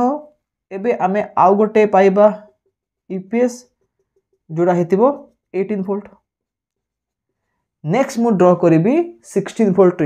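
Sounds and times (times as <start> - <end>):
man lecturing: 0.0 - 3.8, 4.4 - 6.3, 7.8 - 10.0.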